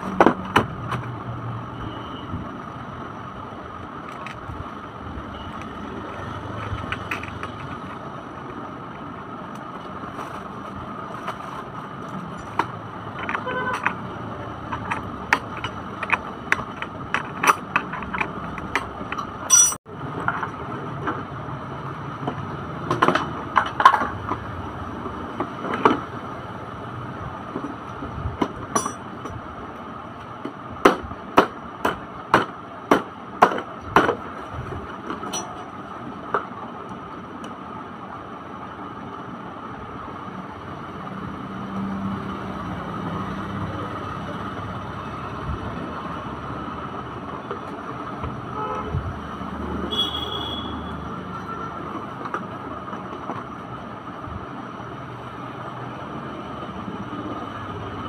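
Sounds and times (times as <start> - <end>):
hard plastic parts clicking: 12.1 - 19.4
spanner clinking on nut: 14.8 - 19.8, 28.7 - 29.1.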